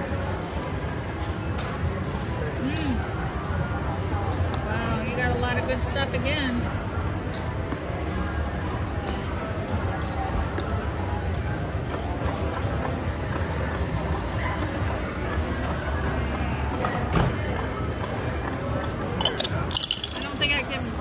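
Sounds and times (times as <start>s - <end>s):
indistinct background chatter: 0.0s - 21.0s
sharp clinks of chips: 19.2s - 20.9s.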